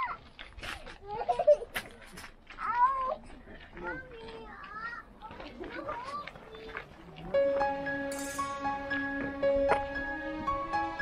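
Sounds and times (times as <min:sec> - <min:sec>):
voices of people walking: 0:00.0 - 0:10.7.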